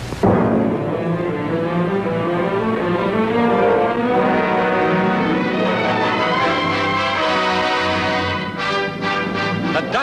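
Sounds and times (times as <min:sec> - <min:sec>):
orchestral music with low bowed strings: 0:00.2 - 0:10.0.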